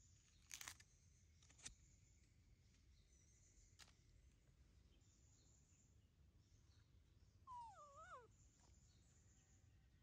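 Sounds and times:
baby monkey whimper call: 7.5 - 8.3.

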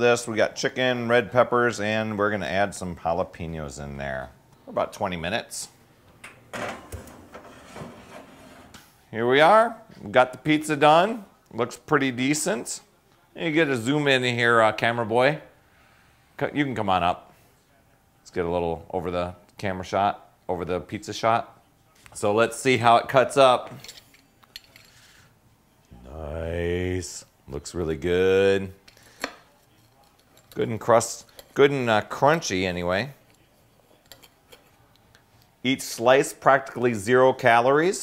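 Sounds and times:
pan scraping over metal rack: 6.6 - 8.8.

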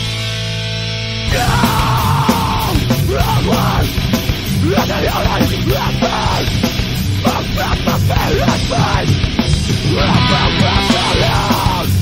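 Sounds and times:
distorted guitars: 0.0 - 12.0
driving drums: 0.0 - 12.0
screamed vocal: 1.3 - 4.0, 4.6 - 6.6, 9.8 - 12.0.

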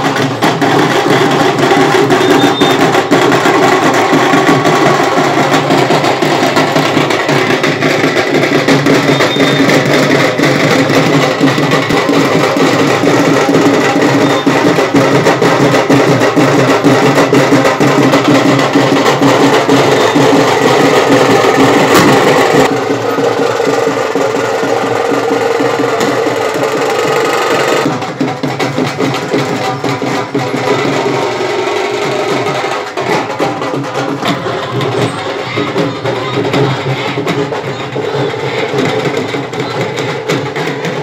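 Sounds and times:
drums beaten fast: 0.0 - 41.0.

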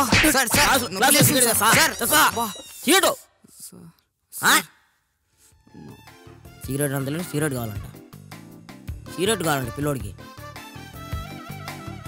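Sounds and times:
spoken word: 5.7 - 6.1.

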